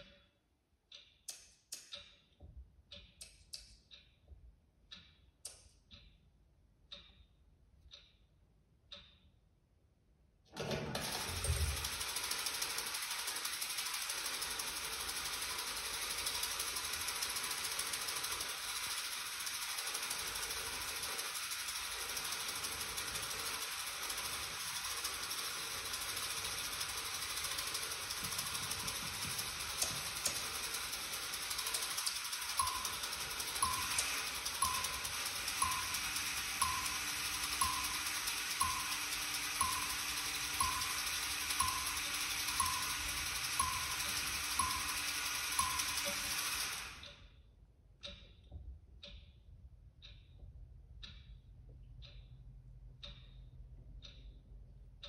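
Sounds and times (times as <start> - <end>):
regular clicks: 0.0 - 55.0
mechanical rattling and clicking: 10.6 - 47.2.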